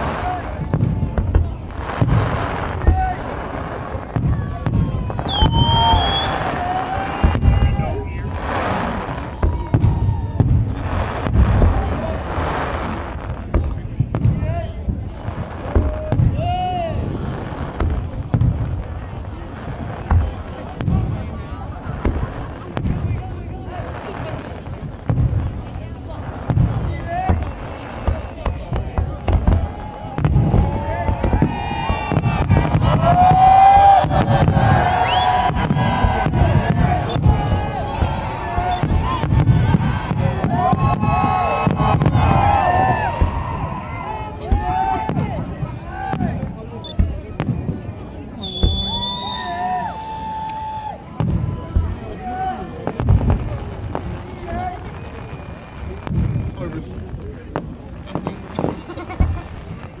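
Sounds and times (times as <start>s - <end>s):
firework shells bursting: 0.0s - 49.5s
crowd talking and calling out: 0.0s - 60.0s.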